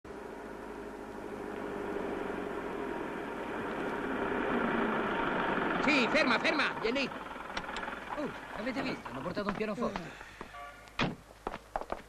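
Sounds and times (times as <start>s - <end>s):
truck engine approaching: 0.0s - 10.5s
man's voice: 8.2s - 10.2s.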